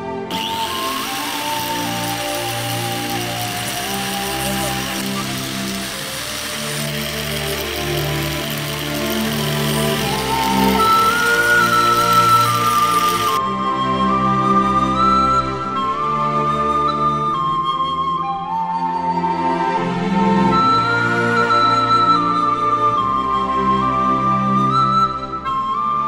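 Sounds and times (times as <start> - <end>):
background music: 0.0 - 26.0
angle grinder sanding wood: 0.3 - 13.4.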